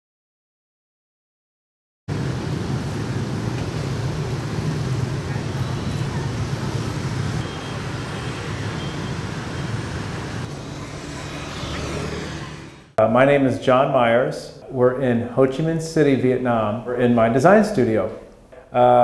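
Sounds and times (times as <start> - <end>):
motorbike and scooter traffic: 2.1 - 13.0.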